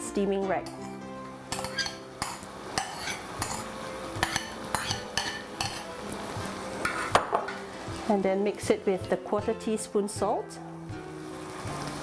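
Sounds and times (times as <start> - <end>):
metal spoon scraping bowl and pot: 0.6 - 5.9, 6.8 - 7.6.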